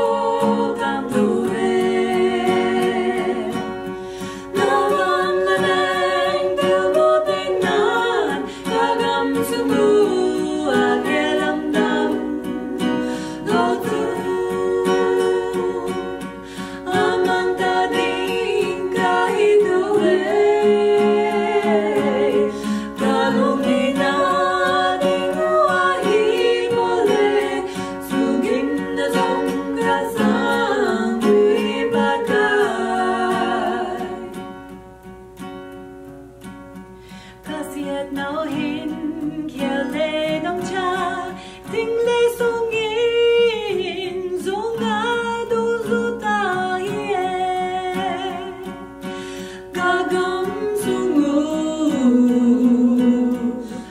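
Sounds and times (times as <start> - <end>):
women singing: 0.0 - 34.8, 37.4 - 53.9
strummed acoustic guitar: 0.0 - 53.9.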